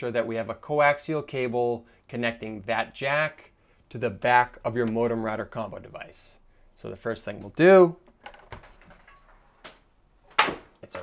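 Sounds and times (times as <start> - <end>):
cable handling noise: 7.4 - 11.0.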